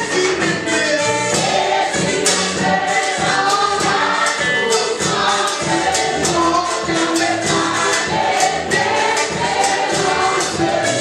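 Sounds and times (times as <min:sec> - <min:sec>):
congregation singing: 0:00.0 - 0:11.0
drum kit with cymbals: 0:00.0 - 0:11.0.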